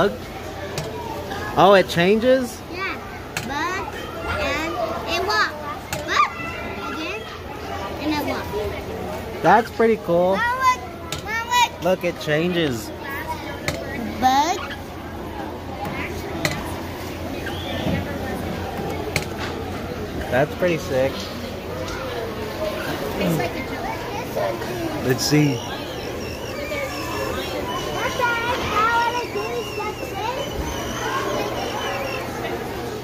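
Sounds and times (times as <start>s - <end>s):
murmur of voices: 0.0s - 33.0s.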